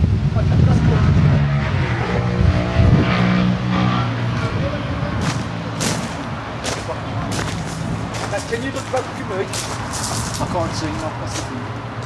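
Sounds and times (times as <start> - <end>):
car engine humming: 1.3 - 12.0.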